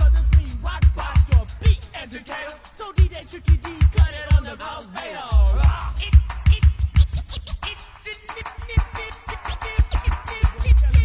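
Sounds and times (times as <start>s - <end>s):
hip hop beat with heavy kick: 0.0s - 11.0s
rapper calling out: 0.0s - 11.0s
record scratching: 3.0s - 11.0s.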